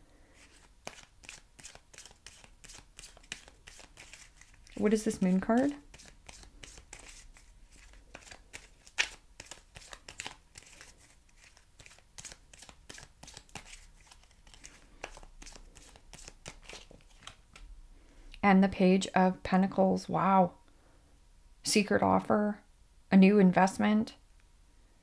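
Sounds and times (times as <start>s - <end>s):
cards shuffled by hand: 0.4s - 17.6s.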